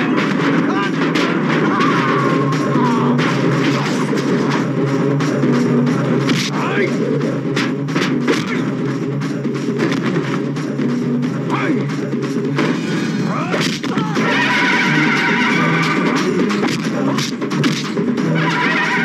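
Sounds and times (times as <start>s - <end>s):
film background score: 0.0s - 19.0s
punch sound effects: 6.1s - 6.8s, 7.6s - 8.8s, 9.8s - 10.5s, 13.4s - 14.5s, 15.1s - 18.1s.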